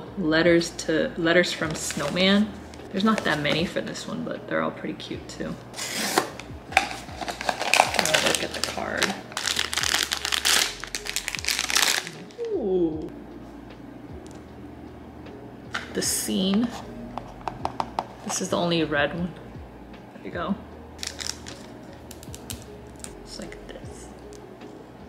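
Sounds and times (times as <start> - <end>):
foil pouch crinkling: 6.8 - 12.5, 21.0 - 23.1.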